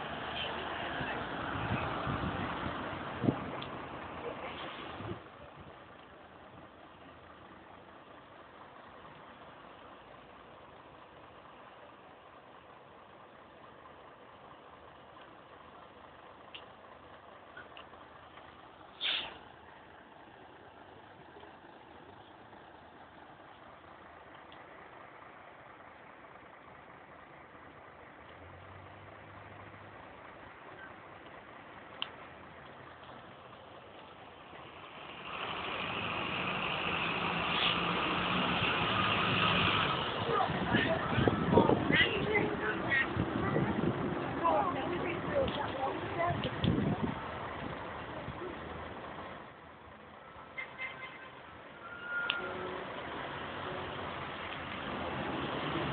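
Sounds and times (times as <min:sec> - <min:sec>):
bus diesel engine passing: 0:00.0 - 0:55.9
bus engines idling: 0:00.0 - 0:55.9
brief sharp noise: 0:19.0 - 0:19.4.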